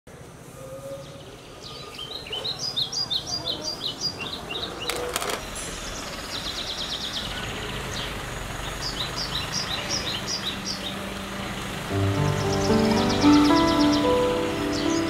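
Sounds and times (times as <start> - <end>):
birds chirping and trilling: 0.6 - 15.0.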